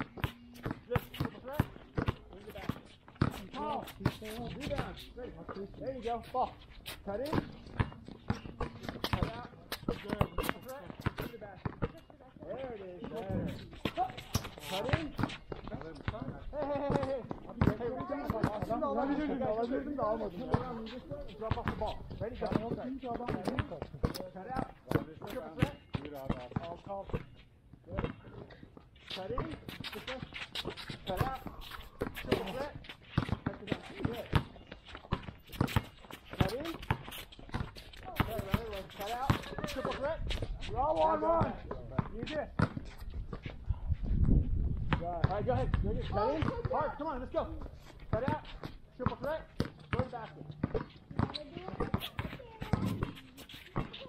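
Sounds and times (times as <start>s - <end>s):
basketballs bouncing: 0.0s - 43.5s, 44.8s - 54.0s
voices talking and calling: 0.0s - 54.0s.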